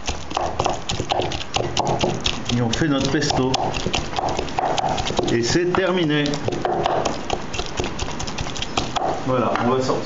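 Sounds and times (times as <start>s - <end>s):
wooden pestle knocking ceramic mortar: 0.0s - 9.7s.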